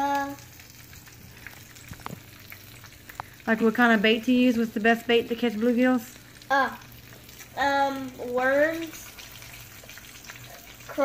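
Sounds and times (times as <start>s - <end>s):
fish sizzling in grease: 0.0s - 11.0s.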